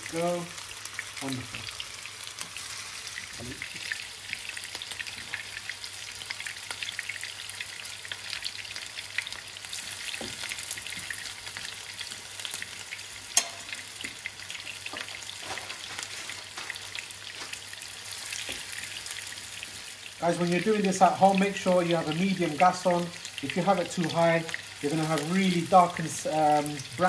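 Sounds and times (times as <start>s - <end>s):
patties sizzling in hot oil: 0.0s - 27.0s.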